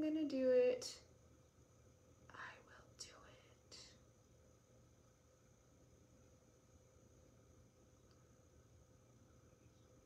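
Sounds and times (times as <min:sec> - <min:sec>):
person whispering: 0:02.3 - 0:04.0.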